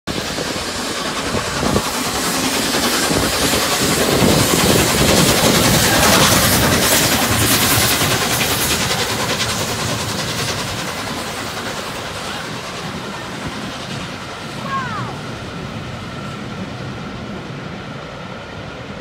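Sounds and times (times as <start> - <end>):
train wheels rolling: 0.1 - 14.6
steam locomotive exhaust: 0.1 - 19.0.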